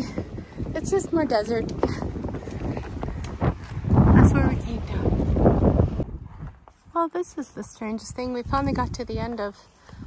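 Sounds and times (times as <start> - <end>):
footsteps on wooden footbridge: 0.0 - 4.0
wind rumbling on microphone: 0.0 - 10.0.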